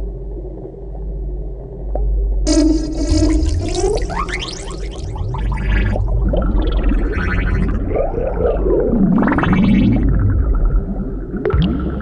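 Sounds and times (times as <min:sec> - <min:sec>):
low watery rumble: 0:00.0 - 0:12.0.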